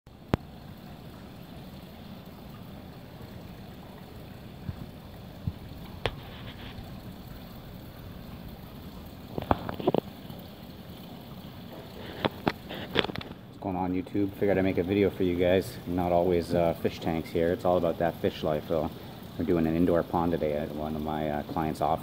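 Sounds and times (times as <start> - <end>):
water trickling over stones: 0.1 - 22.0.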